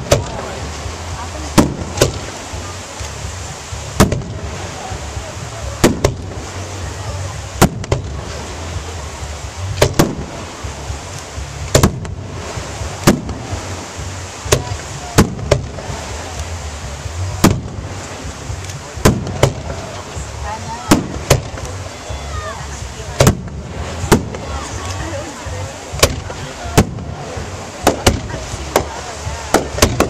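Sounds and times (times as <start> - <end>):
fireworks bangs: 0.0 - 2.7, 3.8 - 6.6, 7.5 - 8.6, 9.7 - 10.9, 11.6 - 16.4, 17.3 - 20.2, 20.8 - 25.1, 25.9 - 30.0
low rumble: 0.0 - 30.0.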